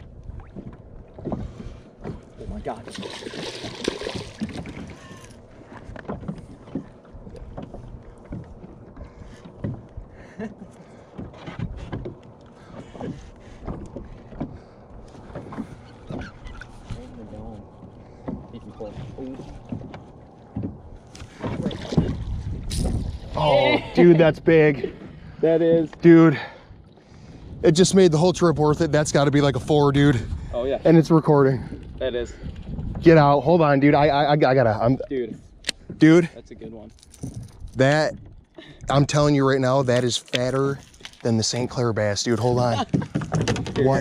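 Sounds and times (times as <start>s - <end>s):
water lapping: 0.0s - 44.0s
fish splashing at surface: 2.8s - 5.2s.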